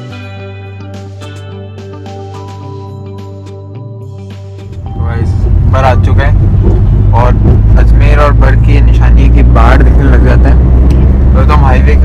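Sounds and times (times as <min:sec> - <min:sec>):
car interior rumble: 0:04.7 - 0:12.0
people talking: 0:04.9 - 0:06.4, 0:07.1 - 0:10.6, 0:11.4 - 0:12.0.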